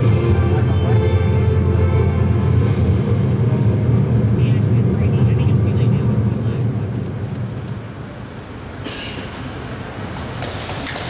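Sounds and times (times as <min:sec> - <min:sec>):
deep steady rumble: 0:00.0 - 0:08.4
film soundtrack over loudspeakers: 0:00.0 - 0:11.0.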